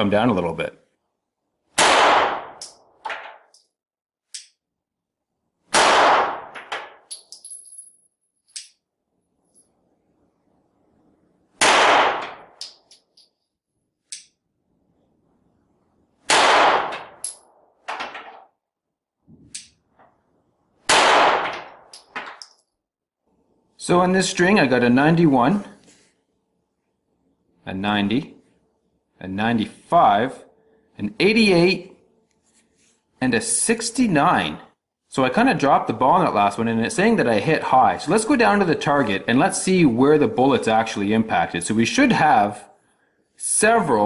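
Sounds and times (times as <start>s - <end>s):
pistol shots: 1.8s - 3.4s, 5.7s - 7.1s, 11.6s - 12.6s, 16.3s - 17.2s, 20.9s - 22.4s.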